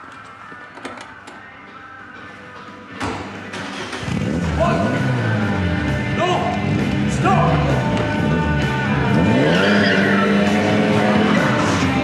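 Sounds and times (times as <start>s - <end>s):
car engine revving: 3.6s - 12.0s
tyres screeching on concrete: 9.2s - 10.7s.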